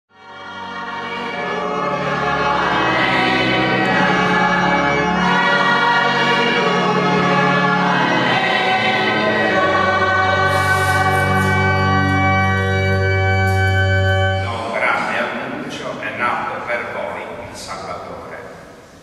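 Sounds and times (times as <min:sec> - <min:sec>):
choir singing sacred music: 0:00.1 - 0:18.8.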